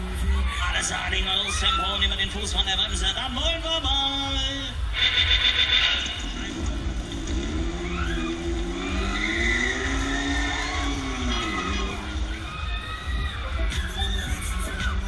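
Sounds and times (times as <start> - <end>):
thrill ride drive whining: 0.0 - 15.0
riders screaming: 0.3 - 2.2, 7.5 - 15.0
steady low rumble: 2.1 - 15.0.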